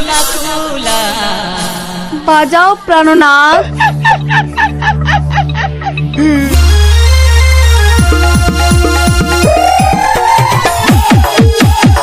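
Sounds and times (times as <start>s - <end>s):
low synth bass tones: 0.0s - 11.2s
sampled cackling cries: 3.5s - 6.5s.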